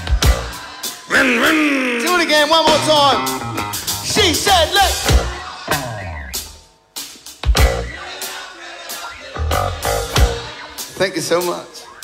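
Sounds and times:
rock band stop-time stabs: 0.0s - 11.0s.

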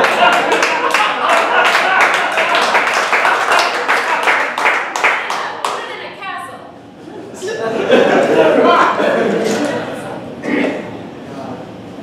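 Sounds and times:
audience applause: 0.0s - 6.0s.

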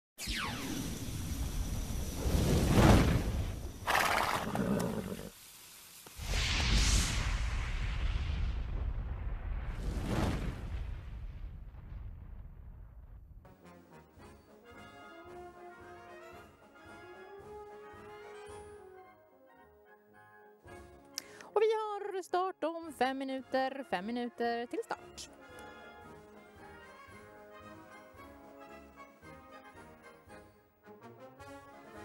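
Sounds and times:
whooshing sweeps and rumbles: 1.0s - 3.8s, 6.2s - 13.5s
soft music with held notes: 13.5s - 21.6s, 25.1s - 32.0s.

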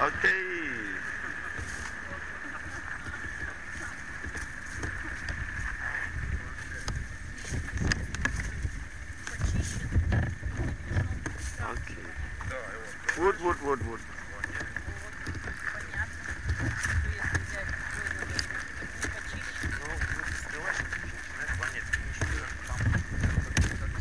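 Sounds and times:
low rumbling: 0.0s - 24.0s
steady high hum: 0.0s - 24.0s.

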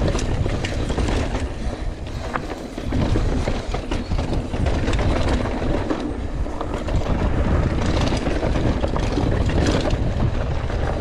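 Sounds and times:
bike rattling over bumps: 0.0s - 11.0s
tyres rumbling on dirt trail: 0.0s - 11.0s
wind on microphone: 0.0s - 11.0s.

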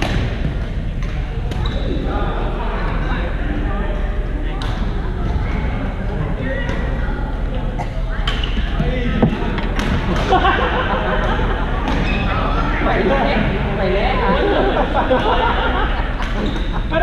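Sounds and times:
players chattering: 0.0s - 17.0s.

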